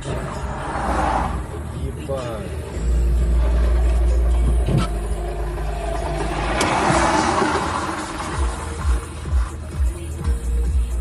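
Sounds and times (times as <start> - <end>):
dump truck passing: 0.0 - 10.2
car road and engine rumble: 0.0 - 11.0.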